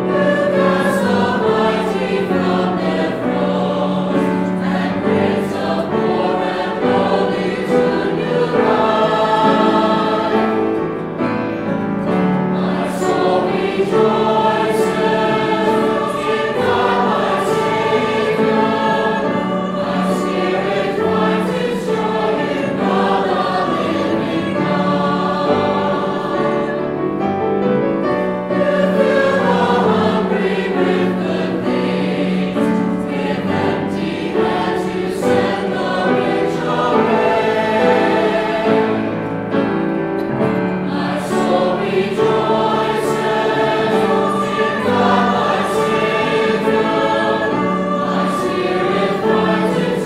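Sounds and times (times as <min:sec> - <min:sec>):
mixed choir singing: 0:00.0 - 0:50.0
piano accompaniment: 0:00.0 - 0:50.0.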